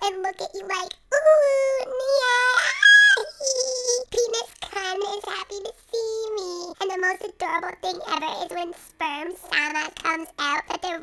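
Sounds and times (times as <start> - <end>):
high childlike sing-song voice: 0.0 - 11.0.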